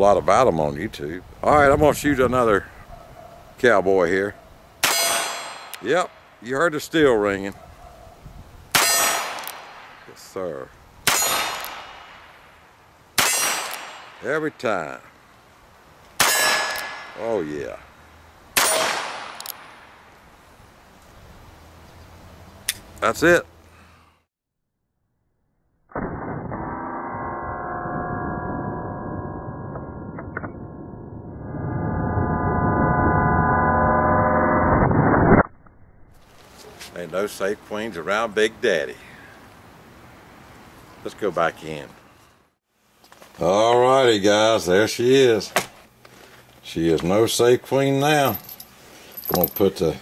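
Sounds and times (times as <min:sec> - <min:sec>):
steel target ringing: 0:04.8 - 0:05.7
gunshot crack: 0:11.0 - 0:12.4, 0:13.2 - 0:14.3, 0:18.6 - 0:19.8.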